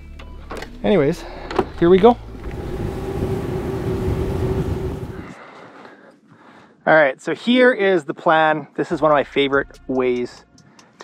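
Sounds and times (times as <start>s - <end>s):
outboard motor running: 2.2s - 5.3s
rushing wind and water: 2.4s - 5.3s.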